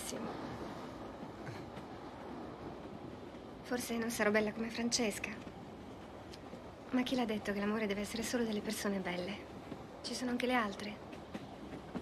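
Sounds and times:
passenger train running: 0.0s - 12.0s.

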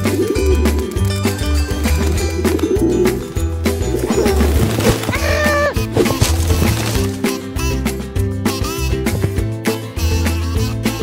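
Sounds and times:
pigeons cooing: 0.0s - 1.1s, 1.9s - 6.1s.

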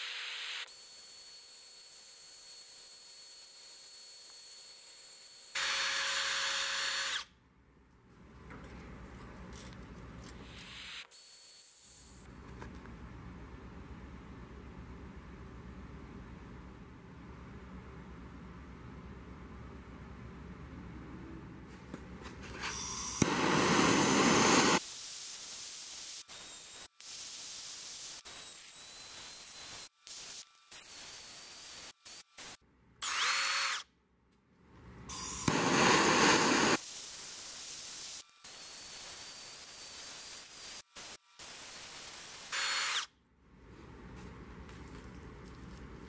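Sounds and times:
power tool running: 0.0s - 7.3s, 22.8s - 24.8s, 35.1s - 36.8s.

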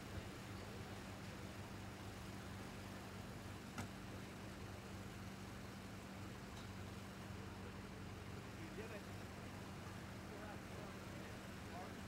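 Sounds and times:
faint distant voices: 7.2s - 12.0s.

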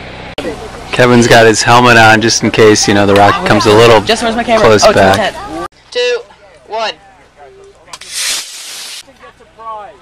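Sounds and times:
rocket motor hissing: 8.0s - 9.0s.

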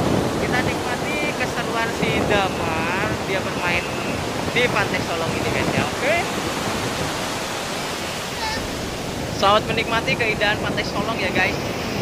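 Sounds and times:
sea waves breaking: 0.0s - 12.0s.

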